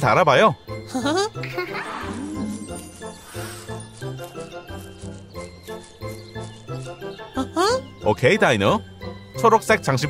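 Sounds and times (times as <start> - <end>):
tinkling children's music: 0.0 - 10.0.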